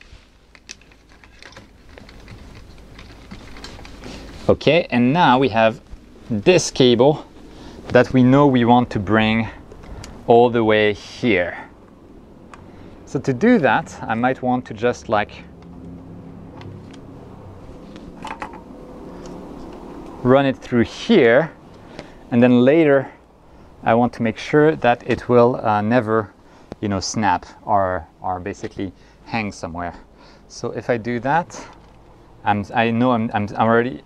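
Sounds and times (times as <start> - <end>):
cable clicks and rustles: 0.0 - 8.4, 9.6 - 10.3, 11.8 - 20.3, 31.0 - 32.2
steady low hum: 0.0 - 34.0.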